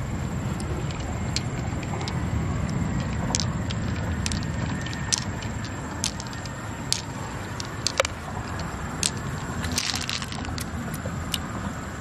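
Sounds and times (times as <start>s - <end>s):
steady low rumble: 0.0s - 12.0s
pearls clicking together: 0.5s - 11.5s.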